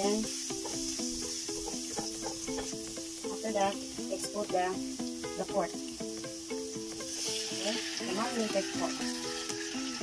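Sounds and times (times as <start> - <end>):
spatula stirring in a wok: 0.0 - 4.0
garlic sizzling in hot oil: 0.0 - 10.0
plucked-string background music: 0.0 - 10.0.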